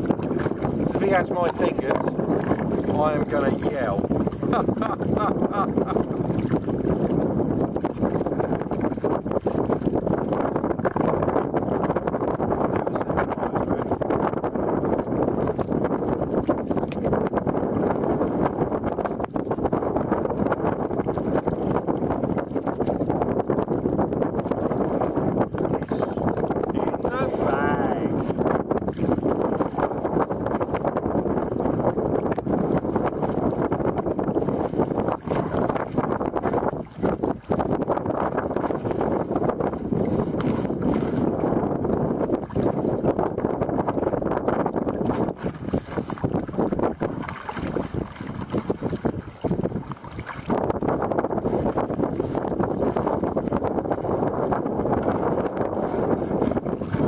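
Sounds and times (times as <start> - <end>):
sea water lapping: 0.0 - 57.0
wind buffeting microphone: 0.0 - 57.0.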